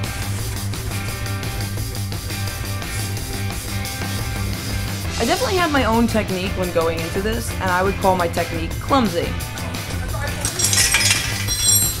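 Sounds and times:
background music with bass: 0.0s - 12.0s
light metallic clink: 10.4s - 12.0s.

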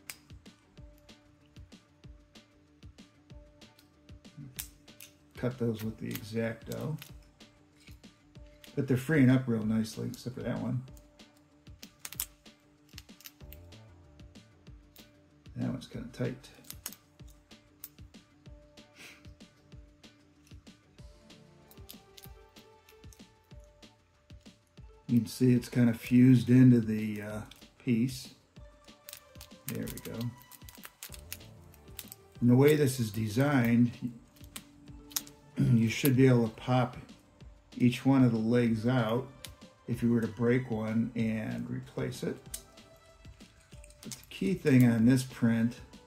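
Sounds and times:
quiet background music: 0.0s - 46.0s.

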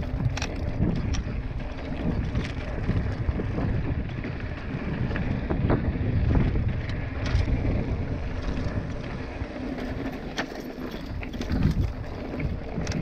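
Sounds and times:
bike clicks and rattles: 0.0s - 13.0s
tyres rolling over gravel: 0.0s - 13.0s
wind rumbling on microphone: 0.0s - 13.0s.

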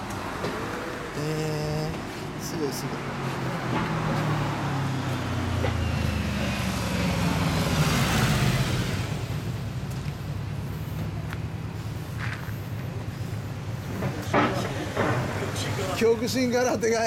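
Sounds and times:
vehicle passing: 0.0s - 17.0s.

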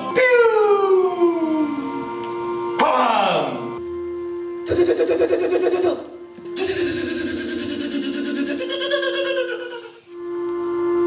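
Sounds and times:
sustained musical drone: 0.0s - 11.0s.

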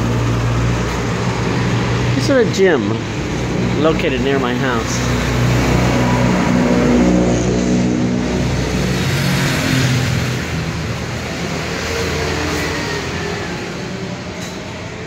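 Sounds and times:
traffic noise: 0.0s - 15.0s
vehicle engine passing by: 0.0s - 15.0s.

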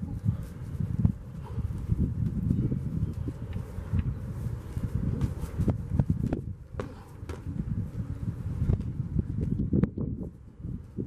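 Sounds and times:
steady low rumble: 0.0s - 11.0s
boxing gloves slapping and thudding: 6.2s - 7.6s.

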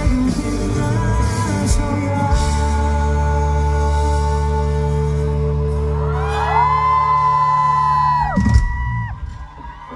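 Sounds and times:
crowd whooping and screaming: 5.7s - 9.9s.

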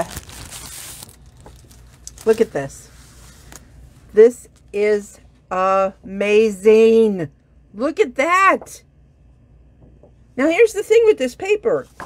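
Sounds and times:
foil paper rustling: 0.0s - 3.7s.

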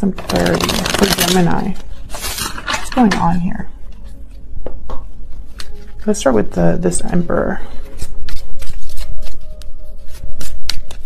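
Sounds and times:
cards being shuffled by hand: 0.1s - 3.0s, 7.8s - 11.0s.

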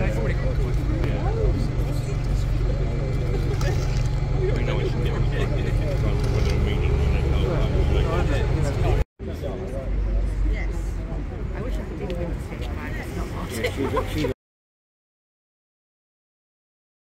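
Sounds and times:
steady low rumble: 0.0s - 9.0s
crowd chatter: 0.0s - 14.4s.

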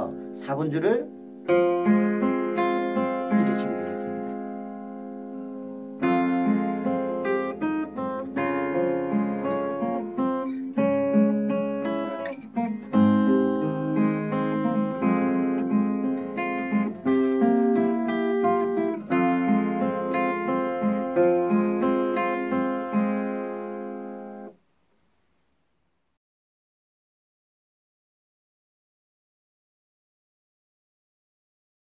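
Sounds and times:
fingerpicked acoustic guitar: 0.0s - 24.6s.

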